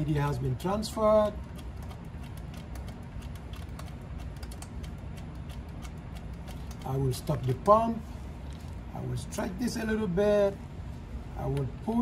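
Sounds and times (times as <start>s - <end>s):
light rapid clicks: 1.4s - 7.6s.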